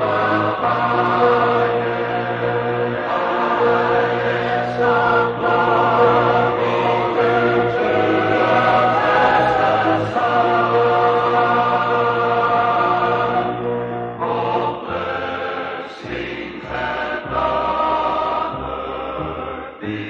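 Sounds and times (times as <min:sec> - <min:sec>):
choir singing held chords: 0:00.0 - 0:20.0.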